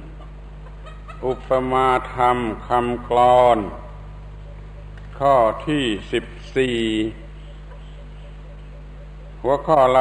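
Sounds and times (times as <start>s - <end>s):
low recording hum: 0.0s - 10.0s
man giving a talk: 1.2s - 3.9s, 5.2s - 7.2s, 9.4s - 10.0s.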